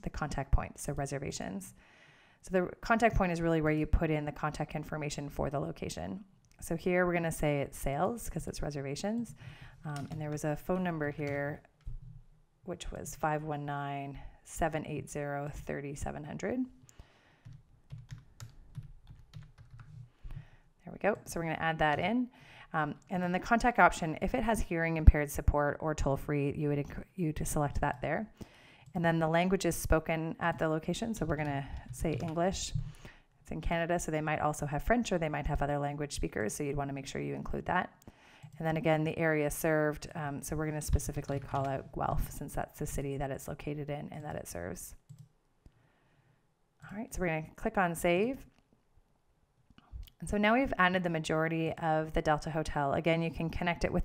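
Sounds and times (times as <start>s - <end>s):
person speaking: 2.5s - 12.1s, 20.8s - 28.3s, 28.9s - 37.9s, 38.5s - 45.0s
keyboard typing: 9.2s - 12.2s, 17.4s - 20.5s, 31.1s - 33.0s, 40.9s - 42.3s, 45.1s - 45.3s.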